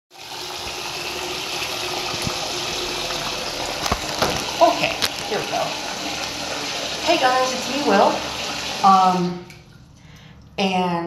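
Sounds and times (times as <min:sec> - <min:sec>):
running water rushing: 0:00.2 - 0:09.8.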